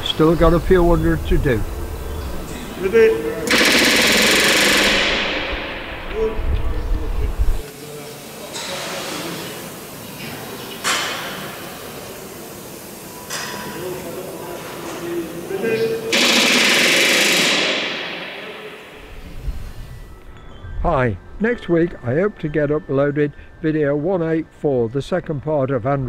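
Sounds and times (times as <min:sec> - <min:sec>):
pneumatic rivet gun hammering: 0:03.5 - 0:06.2, 0:16.1 - 0:18.5.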